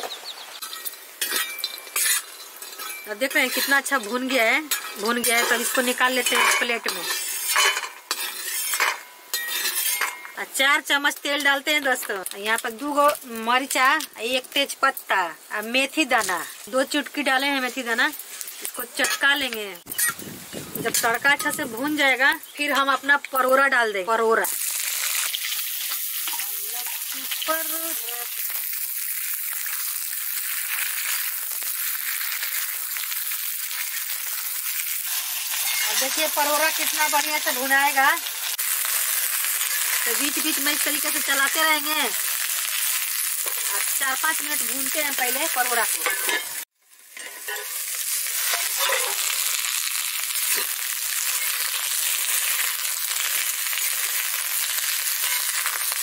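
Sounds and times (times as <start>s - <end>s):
vegetables sizzling in hot oil: 0.0s - 56.0s
spatula stirring in pan: 0.7s - 10.2s.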